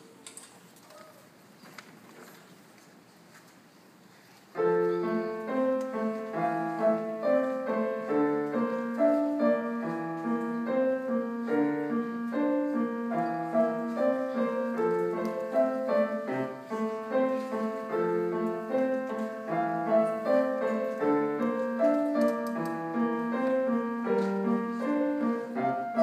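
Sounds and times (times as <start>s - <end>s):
solo piano piece: 4.5s - 26.0s.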